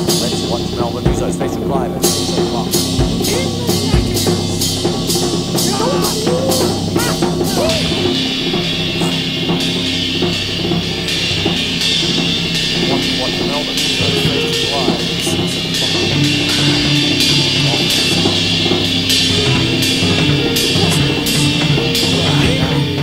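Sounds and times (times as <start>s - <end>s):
acoustic drum kit playing: 0.0s - 23.0s
backing music with held chords: 0.0s - 23.0s.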